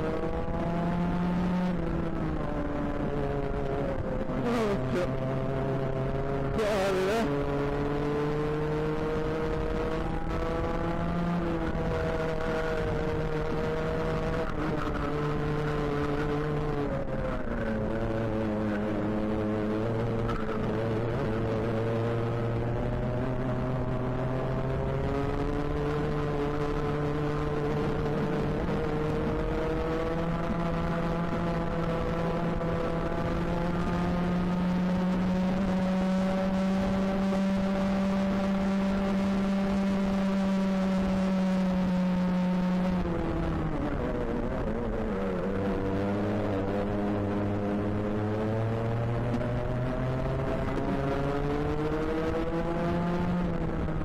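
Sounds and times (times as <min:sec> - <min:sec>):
kart engine revving: 0:00.0 - 0:54.0.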